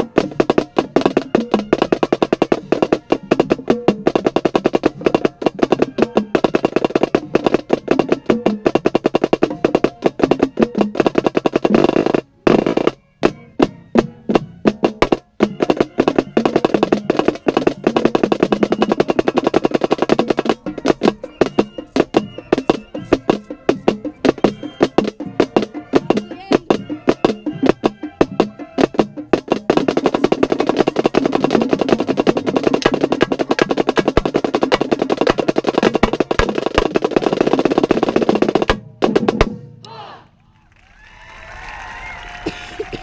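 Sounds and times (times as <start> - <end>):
marching snare drum rolls: 0.0 - 39.8
drumline and band: 0.0 - 43.0.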